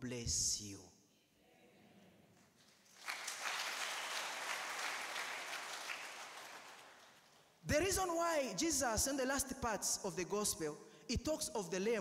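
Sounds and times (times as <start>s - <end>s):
congregation applauding: 2.4s - 7.7s.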